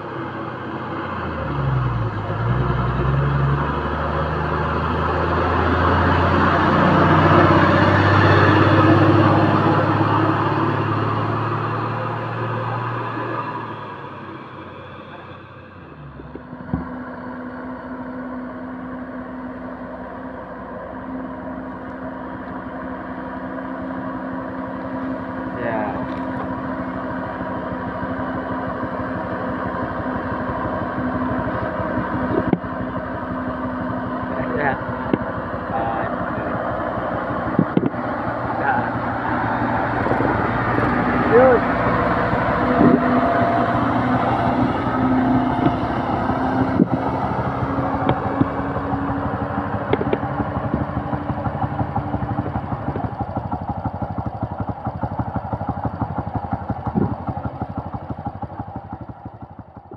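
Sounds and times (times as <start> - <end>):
motorcycle engine: 0.0 - 59.9
truck engine running: 0.0 - 59.9
tyre and road noise: 0.0 - 59.9.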